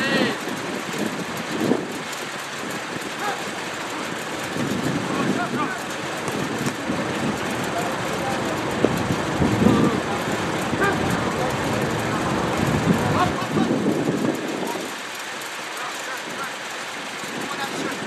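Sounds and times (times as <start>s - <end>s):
distant voices calling: 0.0s - 18.0s
outdoor rushing noise: 0.0s - 18.0s.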